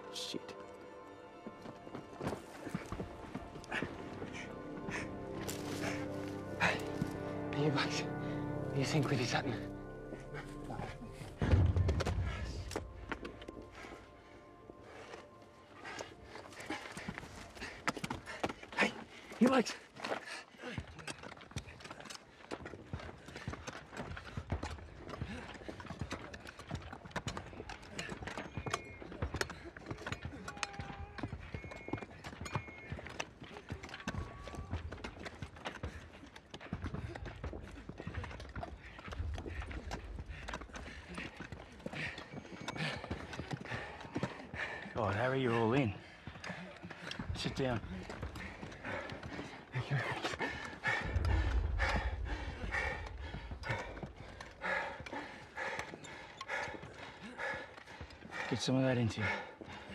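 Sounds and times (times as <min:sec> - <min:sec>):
horse hooves clopping: 0:00.0 - 0:59.9.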